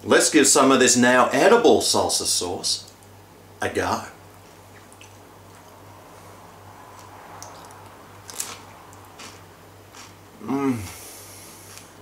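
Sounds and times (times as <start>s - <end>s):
low room hum: 0.0s - 12.0s
faint chewing: 4.3s - 10.2s
chip crunches: 7.0s - 10.2s.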